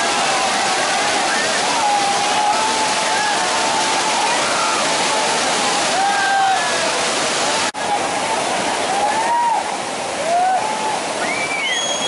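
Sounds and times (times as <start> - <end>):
waterfall rushing over rock: 0.0 - 12.0.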